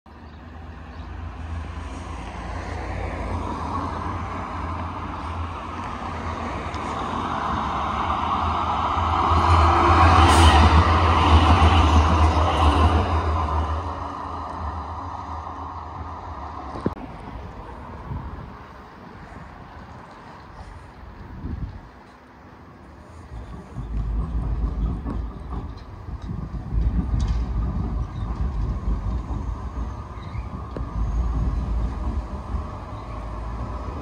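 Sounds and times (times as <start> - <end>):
tram passing: 0.1 - 34.0
wind rumble on microphone: 2.0 - 22.1, 22.9 - 34.0.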